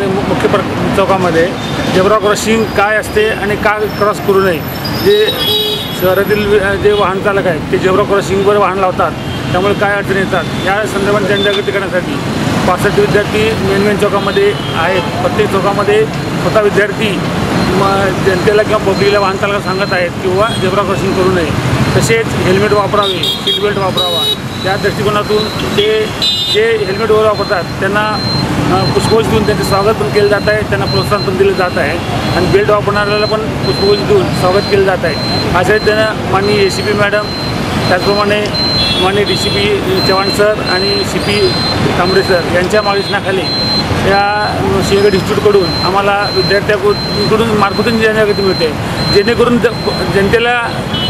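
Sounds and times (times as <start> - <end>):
man talking: 0.0 - 50.8
man speaking: 0.0 - 50.9
road traffic: 0.0 - 51.0.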